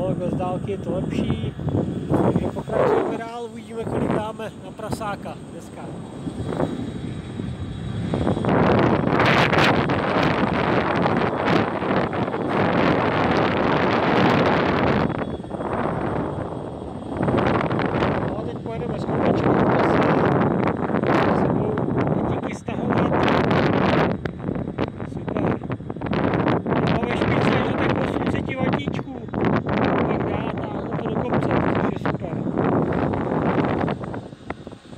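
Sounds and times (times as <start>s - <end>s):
wind buffeting microphone: 0.0s - 34.9s.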